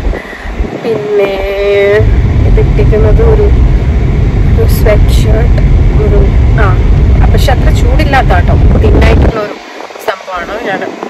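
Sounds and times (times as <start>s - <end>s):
woman talking: 0.0s - 3.6s, 4.5s - 11.0s
car rumble from inside cabin: 0.0s - 11.0s.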